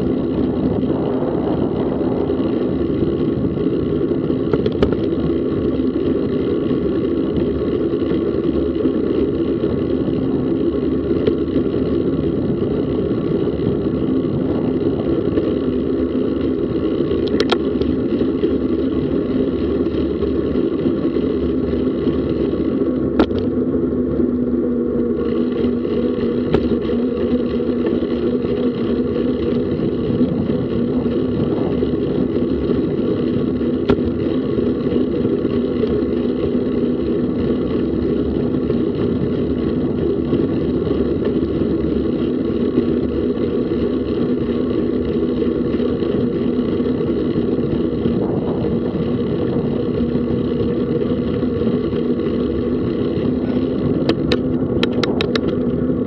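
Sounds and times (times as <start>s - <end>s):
bicycle tyres rolling on pavement: 0.0s - 56.0s
wind rumble on microphone: 0.0s - 56.0s
sharp clicks from rattles: 2.2s - 23.6s, 25.2s - 48.4s, 49.2s - 55.9s.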